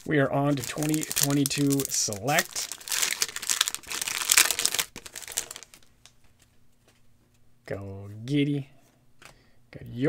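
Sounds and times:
foil wrapper tearing and crinkling: 0.0s - 5.9s.

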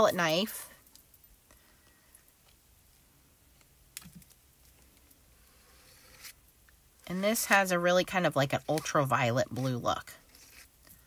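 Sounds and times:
palette knife scraping: 5.4s - 6.4s, 7.1s - 11.0s.

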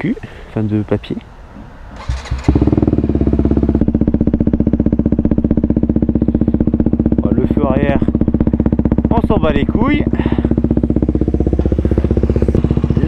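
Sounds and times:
motorcycle engine idling: 2.0s - 13.0s.

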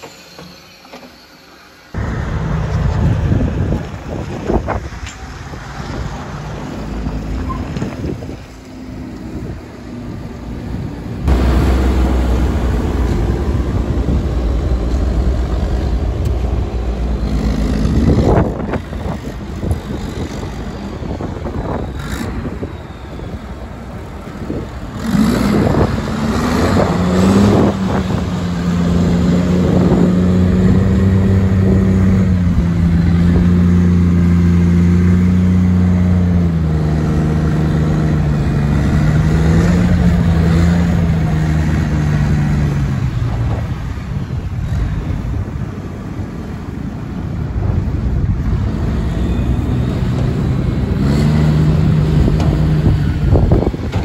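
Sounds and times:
tractor engine revving: 2.0s - 54.0s.

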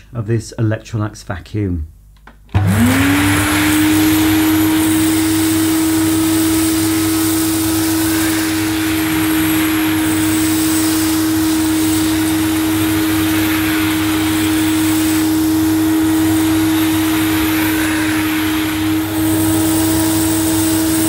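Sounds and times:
vacuum cleaner running: 2.5s - 21.0s.

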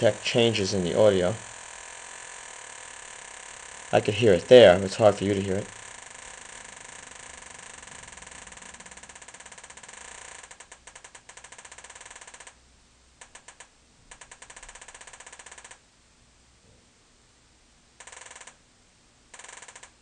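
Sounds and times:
metal detector ticking buzz: 0.0s - 12.6s, 13.2s - 15.8s, 18.0s - 18.6s, 19.3s - 20.0s.

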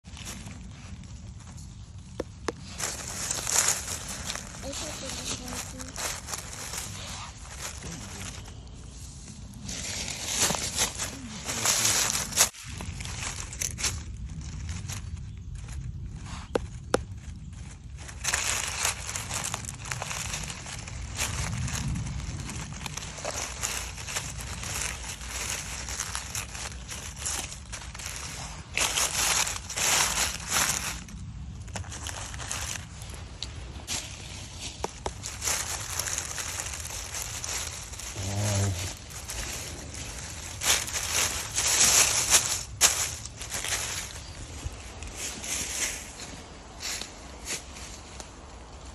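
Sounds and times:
dry leaves rustling and crunching: 0.0s - 48.9s.

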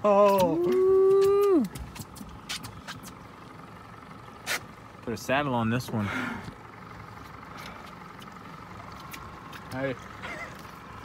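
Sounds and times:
outboard motor idling: 0.0s - 11.0s.

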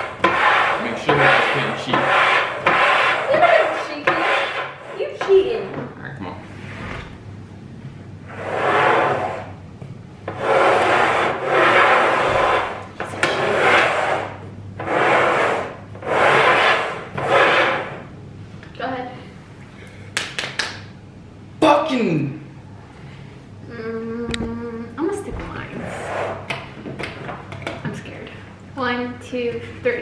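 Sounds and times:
bowls sliding across wooden table: 0.0s - 5.5s, 8.2s - 9.6s, 10.3s - 18.1s, 25.7s - 26.7s.

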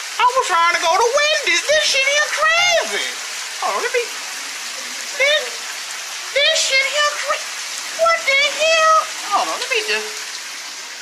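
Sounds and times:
heavy rain pouring: 0.0s - 11.0s
person exclaiming: 0.2s - 3.2s, 5.2s - 5.6s, 6.4s - 7.4s, 8.0s - 9.6s.

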